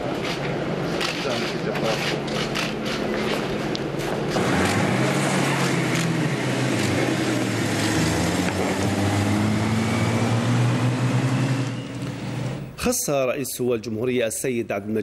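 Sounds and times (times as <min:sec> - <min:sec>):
outdoor noise: 0:00.0 - 0:12.8
car engine rising in pitch: 0:04.4 - 0:12.7.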